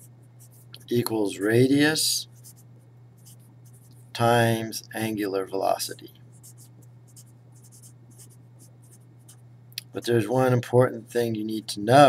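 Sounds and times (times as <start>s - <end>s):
marker scratching on paper: 0.0s - 0.8s, 2.3s - 4.0s, 6.4s - 9.4s
steady low hum: 0.0s - 12.0s.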